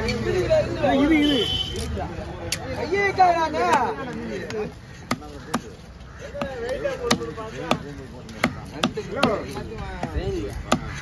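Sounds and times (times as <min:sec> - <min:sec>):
cleaver chopping on wooden block: 0:04.5 - 0:05.7, 0:06.4 - 0:11.0.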